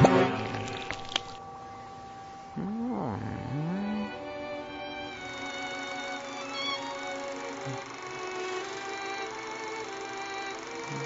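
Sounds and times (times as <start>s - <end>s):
faint held music notes: 0.0s - 11.0s
cartoon rat grumbling: 2.6s - 4.2s.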